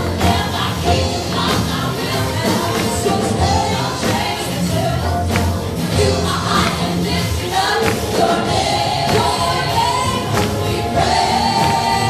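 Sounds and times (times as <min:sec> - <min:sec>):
choir singing held notes: 0:00.0 - 0:12.0
keyboard: 0:00.0 - 0:12.0.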